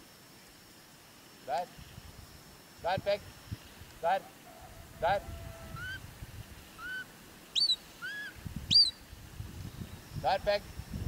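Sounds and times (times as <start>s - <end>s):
shepherd's whistle: 7.6s - 9.0s.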